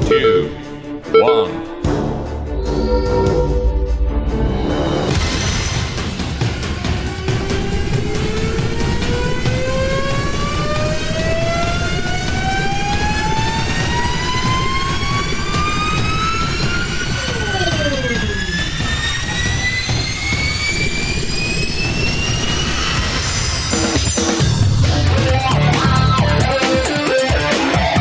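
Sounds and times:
whine rising in pitch: 6.8s - 23.8s.

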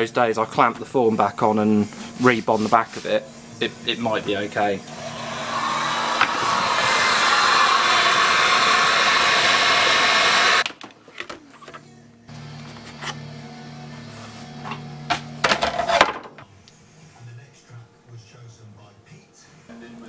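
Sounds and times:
heat gun blowing: 4.8s - 10.7s.

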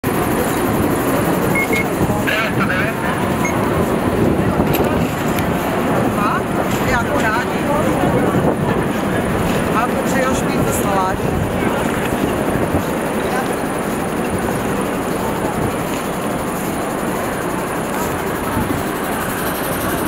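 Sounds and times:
people chattering: 0.0s - 20.0s
traffic noise: 0.0s - 20.0s.

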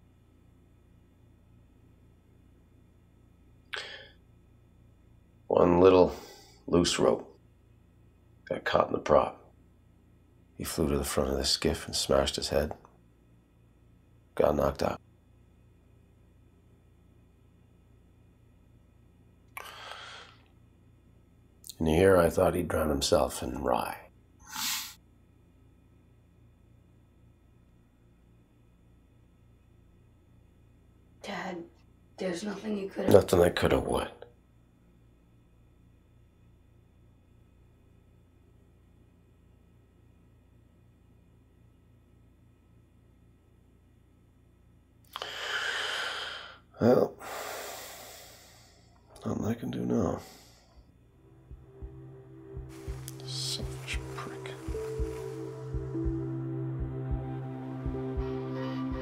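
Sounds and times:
faint low room hum: 0.0s - 58.9s
man breathing: 3.7s - 4.2s, 19.6s - 20.5s, 45.1s - 49.1s, 50.2s - 51.0s.

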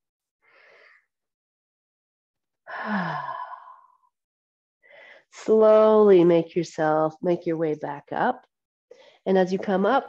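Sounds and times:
person sighing: 2.7s - 3.9s
faint breath in: 4.8s - 5.4s.

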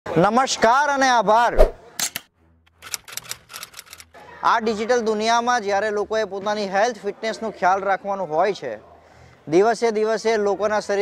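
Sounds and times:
typewriter-like clicks: 2.0s - 4.1s.

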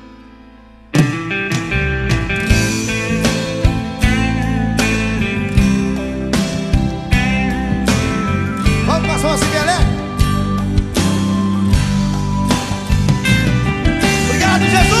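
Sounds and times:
guitars: 0.0s - 15.0s
live band playing: 0.9s - 15.0s.

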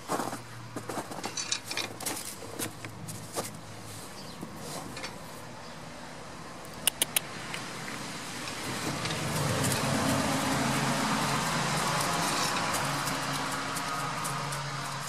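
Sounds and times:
sharp clicks: 6.6s - 7.6s
passing road vehicle rushing: 7.2s - 15.0s.

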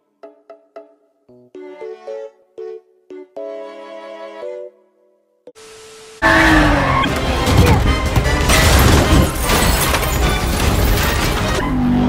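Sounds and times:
faint hiss: 5.6s - 6.2s
vehicle engines: 6.2s - 9.3s, 10.7s - 12.0s
dramatic film score: 6.2s - 12.0s
crashing: 6.5s - 11.6s.

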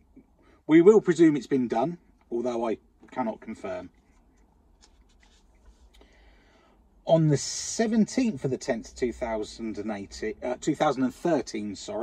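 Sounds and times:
paper rustling: 4.8s - 6.0s.

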